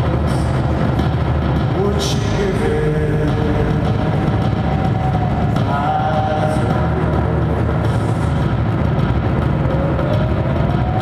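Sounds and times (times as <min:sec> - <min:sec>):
loud low electronic drone: 0:00.0 - 0:11.0.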